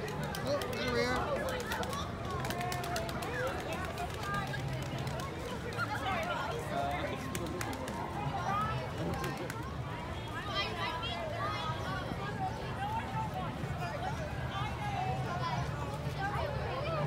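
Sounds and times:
crowd of people talking: 0.0 - 17.0.

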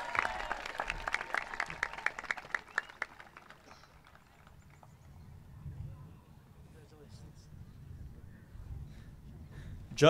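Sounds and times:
scattered applause: 0.0 - 5.2.

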